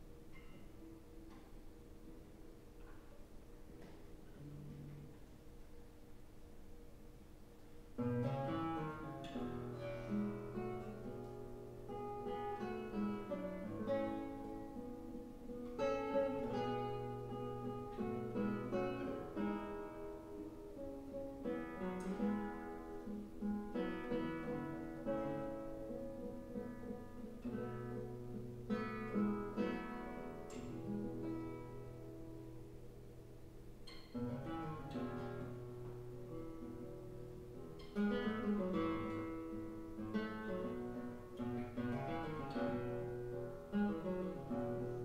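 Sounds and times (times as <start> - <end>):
classical guitar fingerstyle: 0.0 - 6.8, 7.6 - 45.0.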